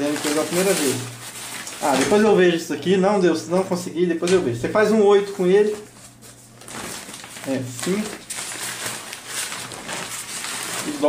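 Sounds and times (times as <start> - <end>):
nylon fabric rustling: 0.0 - 2.4, 5.3 - 11.0.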